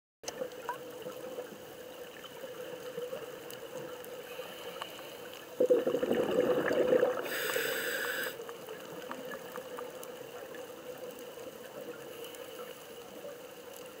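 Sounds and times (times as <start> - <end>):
faint clicks underwater: 0.2 - 5.5, 8.4 - 14.0
hissing inhale through regulator: 4.1 - 6.1, 6.7 - 8.6, 12.0 - 13.0
gurgle of exhaled bubbles: 5.6 - 7.6.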